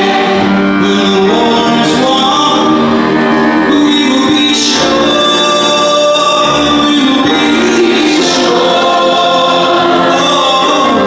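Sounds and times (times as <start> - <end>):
mixed choir singing held chords: 0.0 - 11.0.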